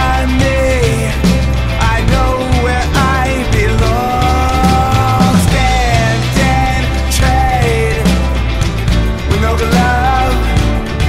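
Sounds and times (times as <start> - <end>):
grunge rock band playing: 0.0 - 11.0
sliding lead guitar melody: 0.0 - 11.0.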